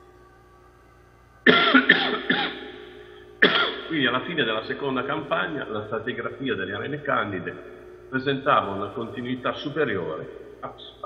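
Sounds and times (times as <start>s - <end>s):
man coughing: 1.5s - 4.0s.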